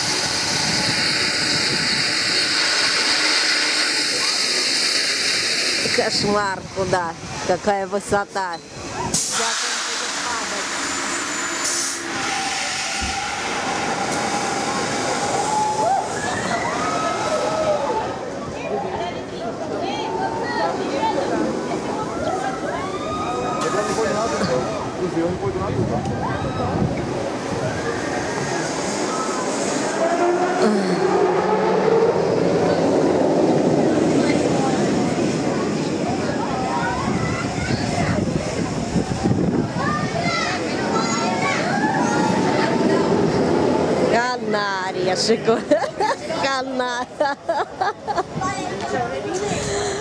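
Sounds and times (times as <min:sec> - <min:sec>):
steady rush of ride noise: 0:00.0 - 0:50.0
short hiss of air: 0:09.1 - 0:15.3.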